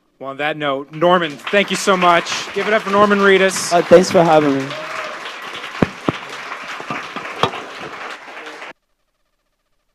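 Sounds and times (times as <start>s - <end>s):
audience applauding: 0.9s - 8.8s
sharp single claps: 1.2s - 8.7s.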